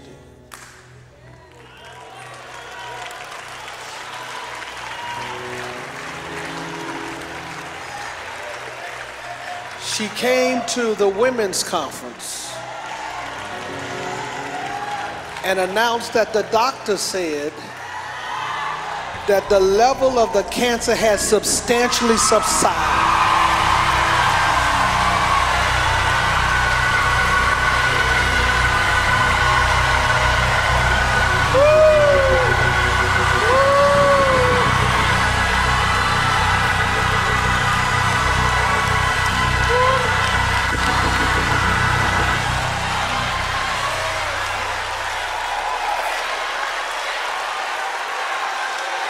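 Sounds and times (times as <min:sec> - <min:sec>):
congregation shouting and cheering: 0:01.4 - 0:11.5, 0:12.6 - 0:17.0, 0:17.7 - 0:49.0
bass line: 0:19.2 - 0:46.5
sustained keyboard chords: 0:19.2 - 0:46.5
long rising and falling shouts: 0:21.1 - 0:47.1.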